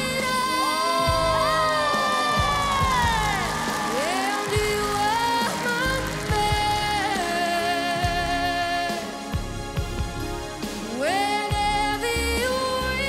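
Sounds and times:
audience cheering and clapping: 0.0s - 9.6s
backing track: 0.0s - 13.0s.

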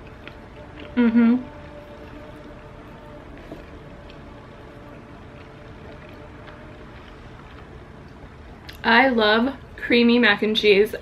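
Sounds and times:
quiet chewing: 0.0s - 8.9s
low background hum: 0.0s - 11.0s.

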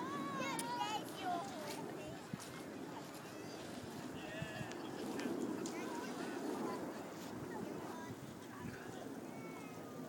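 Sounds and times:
faint distant voices: 0.0s - 10.0s
outdoor background noise: 0.0s - 10.0s.

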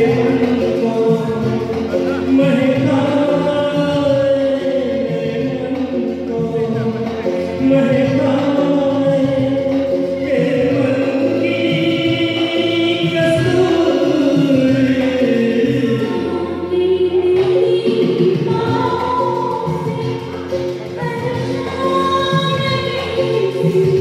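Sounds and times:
backing track over loudspeakers: 0.0s - 24.0s
people singing into microphone: 0.0s - 24.0s.

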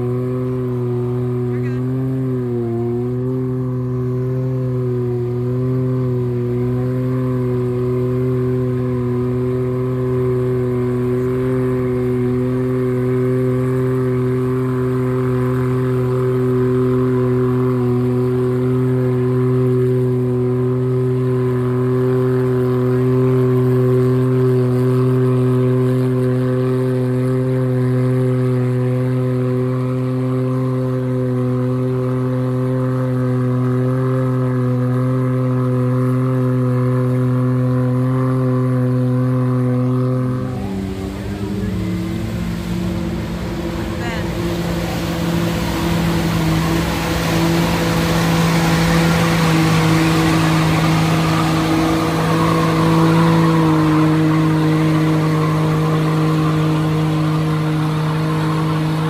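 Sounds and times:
engine running steadily: 0.0s - 59.0s.

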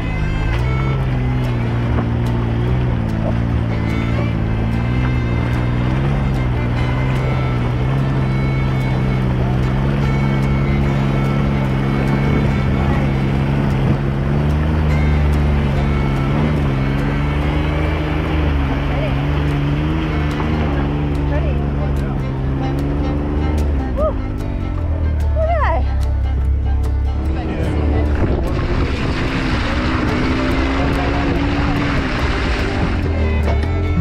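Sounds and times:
engine running at low speed: 0.0s - 34.0s
water rushing and splashing: 0.0s - 34.0s.

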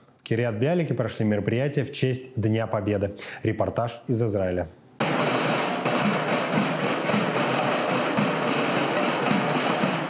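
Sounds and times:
snare drums rolling: 5.0s - 10.0s.

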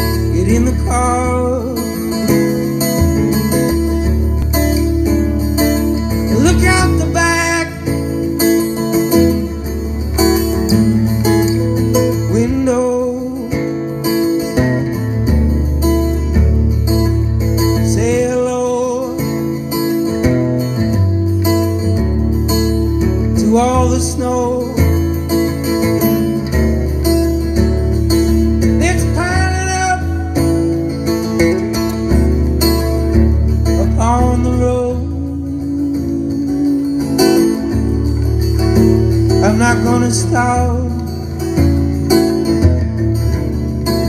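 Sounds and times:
amplified acoustic guitar: 0.0s - 44.0s.

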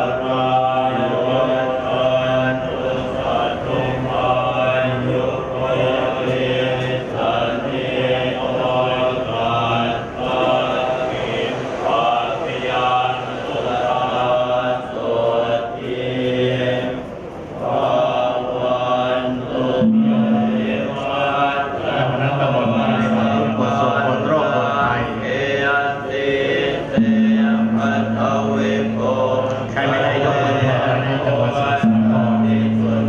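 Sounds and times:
monks chanting through loudspeakers: 0.0s - 33.0s.

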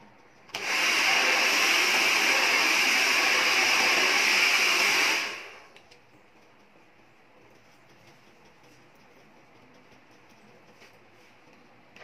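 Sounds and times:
hair dryer blowing: 0.5s - 5.8s.

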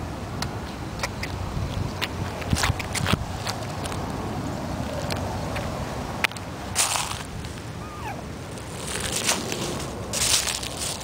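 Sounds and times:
wind rumble on microphone: 0.0s - 11.0s
sharp scuffs and clicks: 1.0s - 4.2s, 8.6s - 11.0s.

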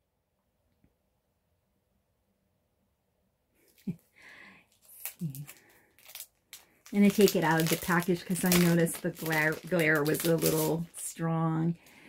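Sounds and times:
plastic sleeve crinkling: 4.7s - 12.0s.

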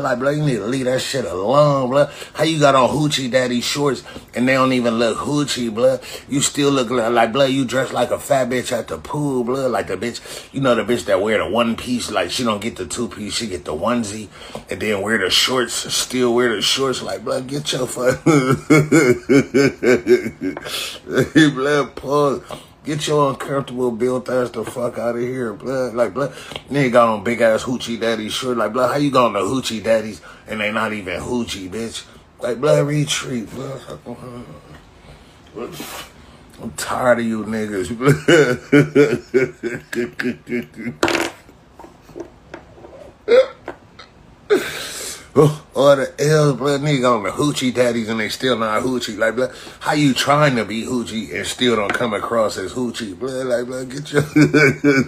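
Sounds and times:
man laughing: 17.6s - 22.4s, 33.4s - 34.7s, 37.7s - 42.2s, 43.3s - 43.7s, 44.5s - 45.6s, 53.3s - 55.0s
breathy intake: 20.6s - 21.1s, 44.5s - 45.3s.

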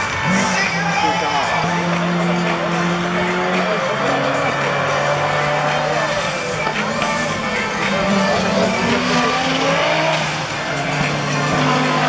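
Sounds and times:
music over loudspeakers: 0.0s - 12.0s
racing car engines: 0.0s - 12.0s.

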